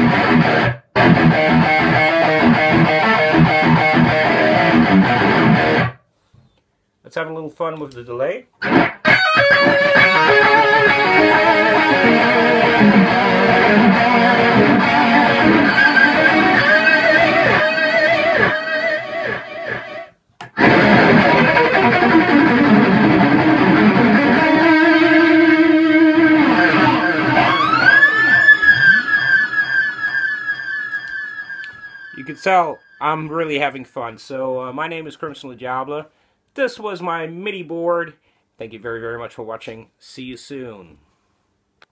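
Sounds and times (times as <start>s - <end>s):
distorted electric guitar with delay: 0.0s - 6.0s, 8.6s - 33.6s
siren-like guitar pitch swoops: 8.8s - 33.6s.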